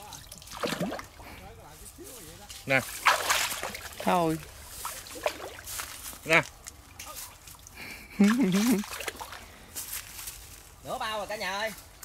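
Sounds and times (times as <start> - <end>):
water sloshing and splashing: 0.0 - 1.5, 2.5 - 10.0.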